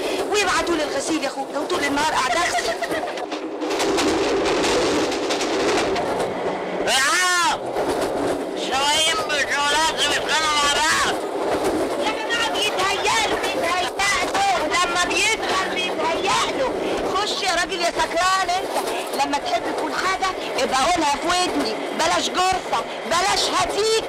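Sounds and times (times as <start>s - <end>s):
train carriage running noise: 0.0s - 24.0s
raised voices: 12.0s - 18.5s.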